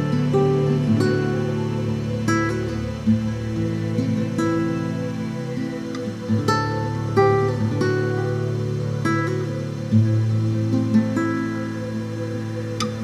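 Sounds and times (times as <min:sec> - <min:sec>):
acoustic guitar instrumental: 0:00.0 - 0:13.0.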